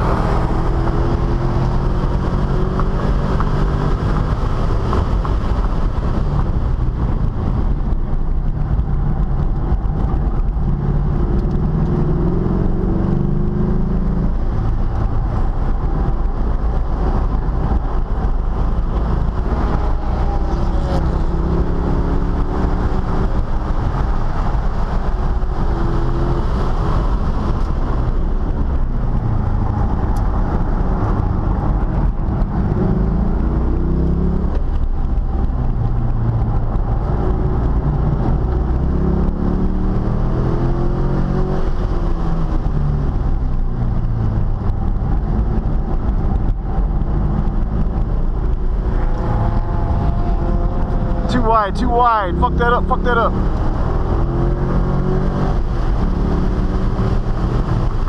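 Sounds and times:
car engine accelerating: 0.0 - 58.0
road and wind noise: 0.0 - 58.0.

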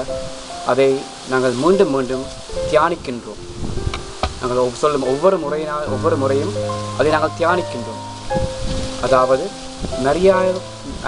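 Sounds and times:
soft sustained background music: 0.0 - 11.0
man speaking: 0.7 - 3.4, 4.4 - 8.1, 9.0 - 11.0.

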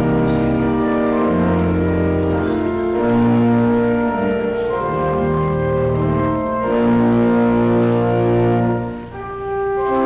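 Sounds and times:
church organ chord: 0.0 - 10.0.

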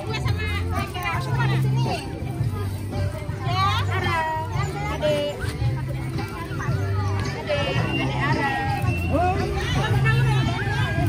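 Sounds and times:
children calling out and chattering: 0.0 - 11.0
music with blocky bass: 0.0 - 11.0.

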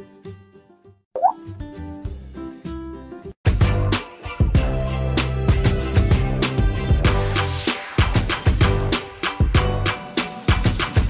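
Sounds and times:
rising pop sound effect: 1.2 - 1.4.

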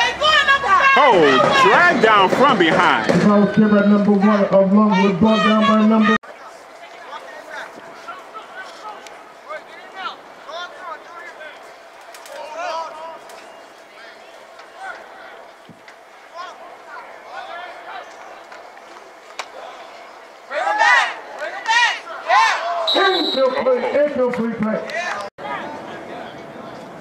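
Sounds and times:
spectators shouting high-pitched: 0.0 - 2.3, 20.5 - 23.5
voices calling out: 0.0 - 27.0.

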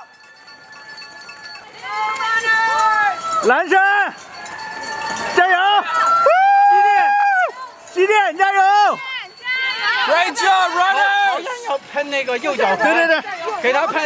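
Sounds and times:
spectators cheering: 1.8 - 11.7.

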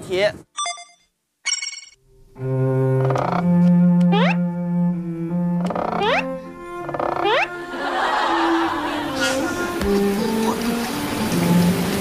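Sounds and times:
slow melody of held notes: 2.3 - 7.8.

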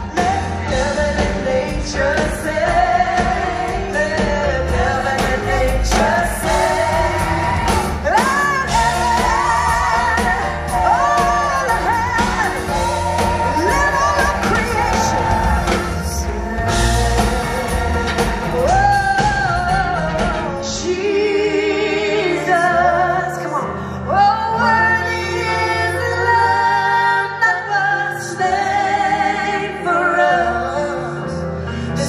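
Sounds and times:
live band playing: 0.0 - 32.0
woman singing: 0.0 - 32.0.

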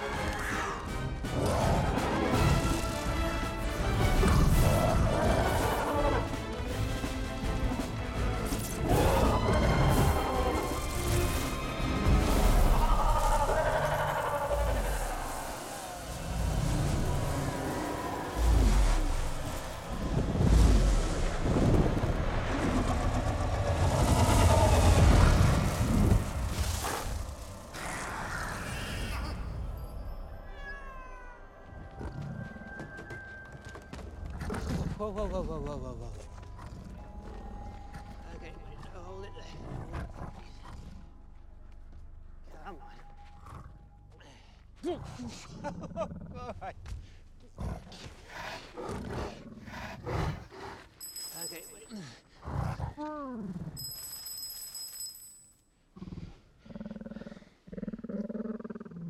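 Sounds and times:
low rumble: 9.1 - 28.6.

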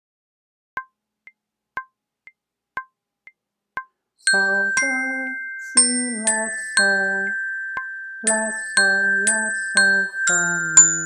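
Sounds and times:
metronome clicks: 0.8 - 11.0.

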